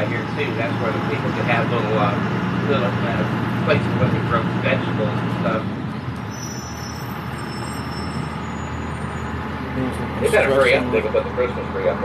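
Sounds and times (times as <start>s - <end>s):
road noise: 0.0s - 12.0s
vehicle engine rumble: 0.0s - 12.0s.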